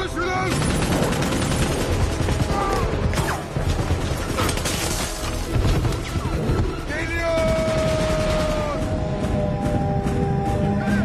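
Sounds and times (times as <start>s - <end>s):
film music score: 0.0s - 11.0s.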